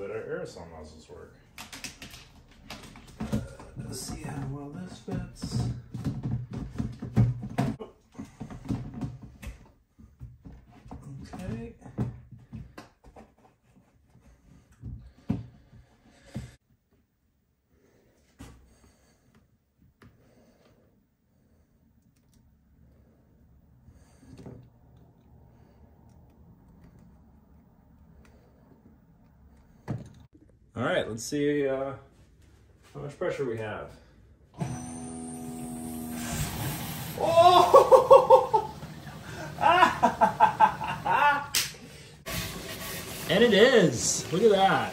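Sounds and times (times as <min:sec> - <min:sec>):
water pump humming: 0:34.6 - 0:44.9
water spraying from nozzles: 0:35.6 - 0:41.4, 0:42.3 - 0:44.9.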